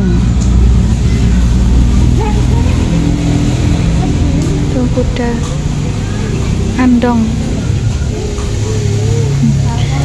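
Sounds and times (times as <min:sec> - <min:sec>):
faint voices: 0:00.0 - 0:10.0
vehicle engine running: 0:00.0 - 0:10.0.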